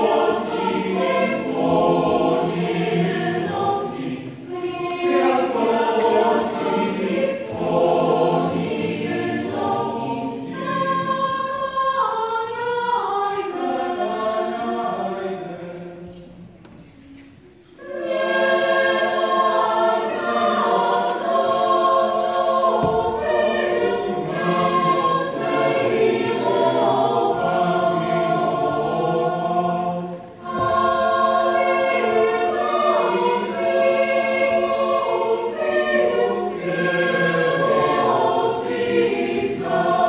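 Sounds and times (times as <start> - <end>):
mixed choir singing in harmony: 0.0 - 40.0.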